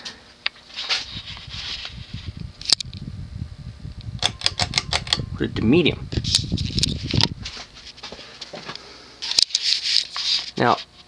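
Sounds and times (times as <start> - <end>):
ceiling fan whooshing: 0.0 - 10.8
sharp click: 4.1 - 5.3.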